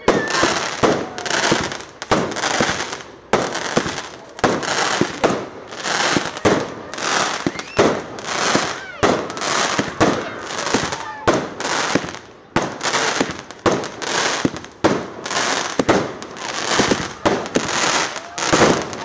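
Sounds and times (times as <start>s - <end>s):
firework bangs: 0.0s - 19.0s
firework crackle: 0.0s - 19.0s.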